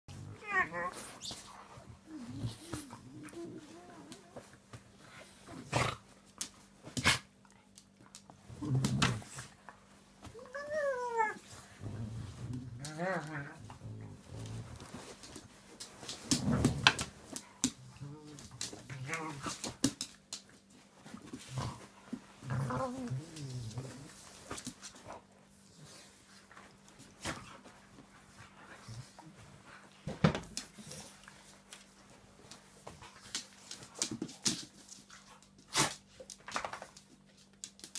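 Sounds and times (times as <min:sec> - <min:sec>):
dogs scuffling: 0:00.4 - 0:37.9.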